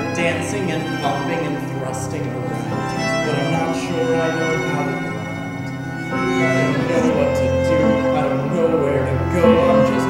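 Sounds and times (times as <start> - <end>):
small band playing: 0.0 - 10.0
violin: 0.0 - 10.0.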